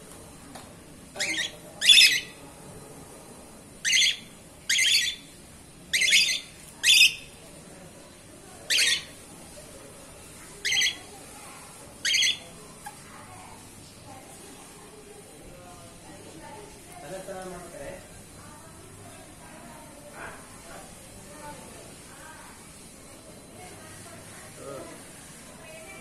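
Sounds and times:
cockatiels squawking: 1.2s - 2.4s, 3.9s - 5.3s, 6.0s - 7.2s, 8.7s - 9.1s, 10.6s - 11.0s, 12.0s - 12.4s.

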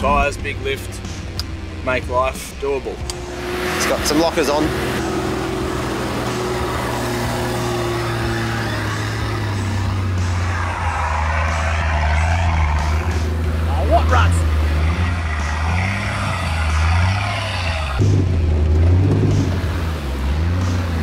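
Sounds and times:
truck engine running at low revs: 0.0s - 21.0s.

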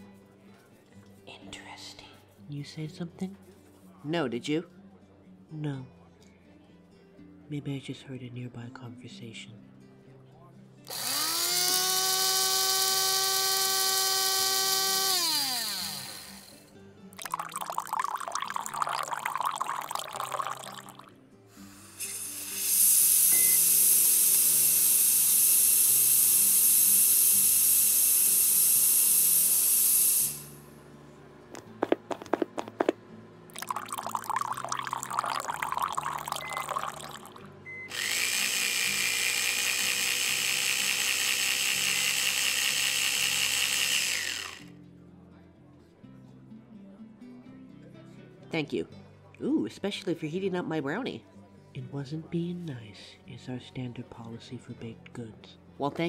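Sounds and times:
soft background music: 0.0s - 56.0s
blender motor: 10.9s - 16.6s, 21.8s - 30.6s, 33.6s - 44.7s
steam hiss: 21.6s - 30.6s.

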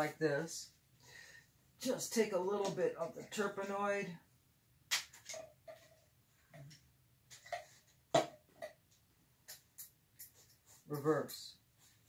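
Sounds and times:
soft paint handling sounds: 5.1s - 12.0s.

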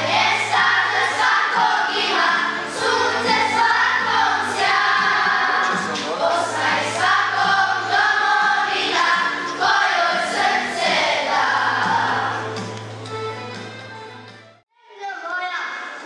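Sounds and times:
children's choir singing: 0.0s - 12.8s.

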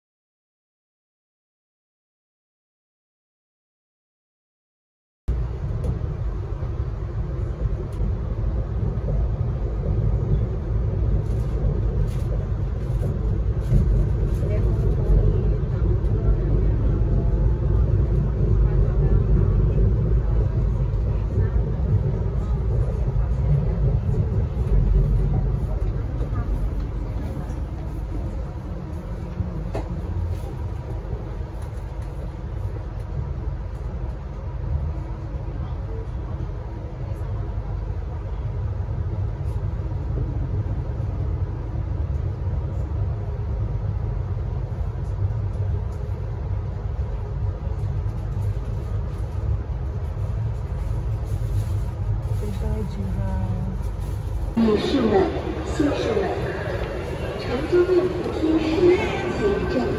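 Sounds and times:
passenger train rumbling: 5.3s - 59.9s.

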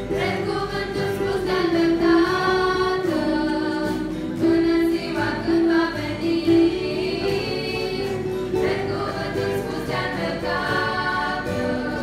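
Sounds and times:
acoustic guitar: 0.0s - 12.0s
girls' choir singing: 0.0s - 12.0s.

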